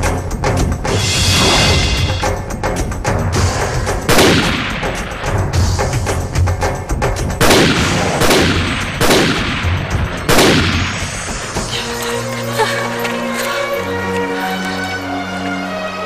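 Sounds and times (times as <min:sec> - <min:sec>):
dramatic percussive music: 0:00.0 - 0:15.2
echoing gunshots: 0:03.9 - 0:05.6, 0:07.4 - 0:11.6.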